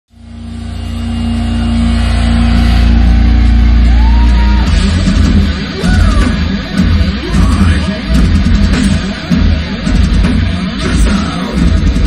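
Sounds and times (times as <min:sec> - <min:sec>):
distorted guitar chord: 0:00.1 - 0:12.0
heavy rapid drum hits: 0:01.9 - 0:12.0.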